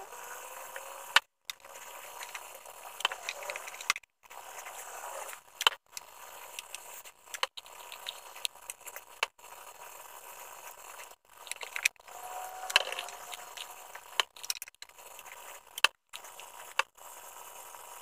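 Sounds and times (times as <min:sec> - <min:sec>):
wooden pieces clicking and scraping: 0:00.8 - 0:09.4, 0:10.9 - 0:17.0.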